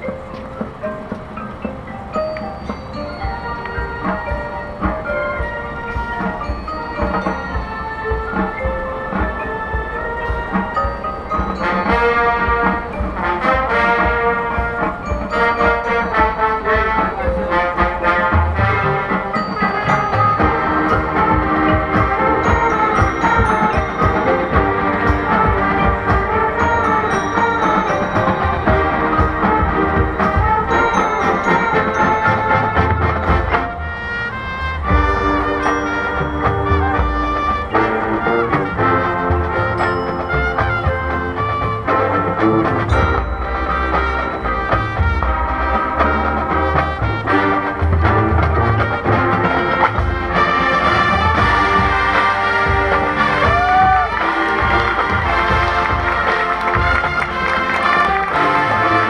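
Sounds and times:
brass band melody: 0.0s - 59.0s
mallet percussion: 0.0s - 59.0s.

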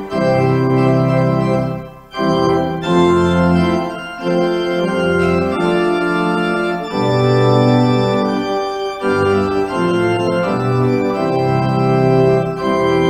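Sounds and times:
church organ playing held chords: 0.0s - 13.0s.

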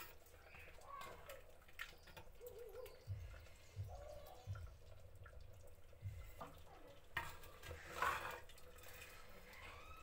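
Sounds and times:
ladle splashing liquid: 0.0s - 10.0s.

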